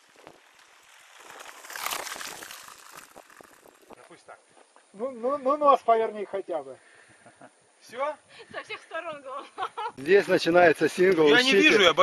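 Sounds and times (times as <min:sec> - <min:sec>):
bike tyres crunching on gravel: 0:00.0 - 0:05.7.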